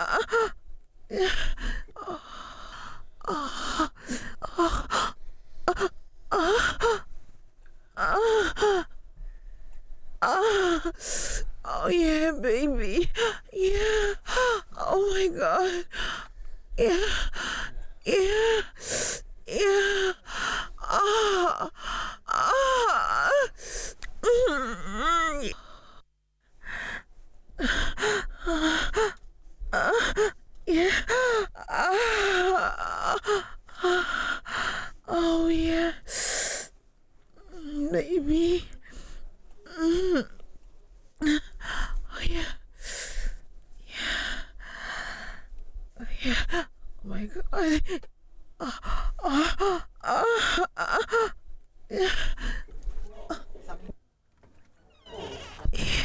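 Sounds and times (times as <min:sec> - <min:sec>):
woman moaning and gasping: 0:00.0 - 0:07.1, 0:08.0 - 0:09.0, 0:10.2 - 0:26.0, 0:27.6 - 0:36.7, 0:37.4 - 0:40.3, 0:41.2 - 0:52.7, 0:55.0 - 0:56.0.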